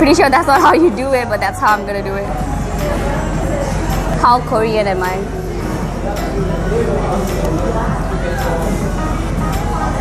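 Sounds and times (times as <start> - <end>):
background music: 0.0 - 10.0
diners talking: 0.0 - 10.0.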